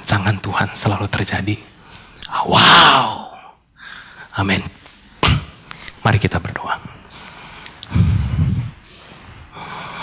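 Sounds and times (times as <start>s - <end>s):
soft drawn-out breath: 7.1s - 10.0s.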